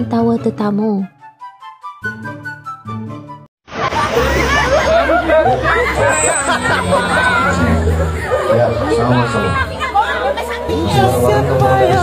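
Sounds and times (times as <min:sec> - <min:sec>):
background music: 0:00.0 - 0:03.5, 0:04.3 - 0:12.0
voices chattering: 0:04.0 - 0:12.0.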